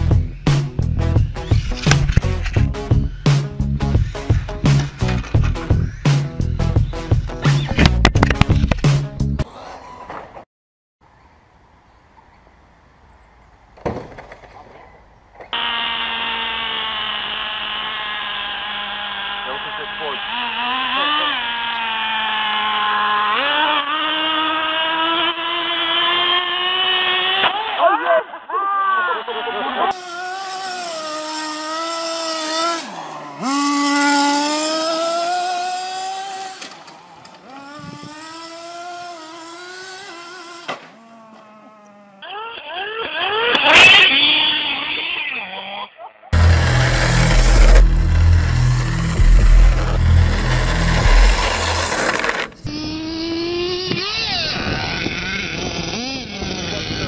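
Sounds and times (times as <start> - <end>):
rc car motors revving: 0.0 - 3.2, 15.4 - 27.8, 29.8 - 57.0
loud rough rumbling: 46.4 - 52.7.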